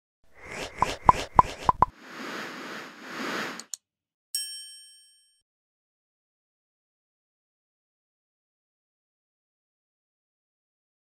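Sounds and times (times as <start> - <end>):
whooshing swells: 0.4 - 3.7
quick pops: 0.6 - 1.9.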